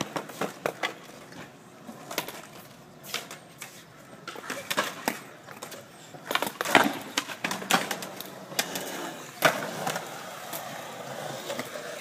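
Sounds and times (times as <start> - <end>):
light skateboard clicks: 0.0 - 10.7
skateboard clacking: 0.0 - 12.0
skateboard wheels rolling on concrete: 0.0 - 12.0.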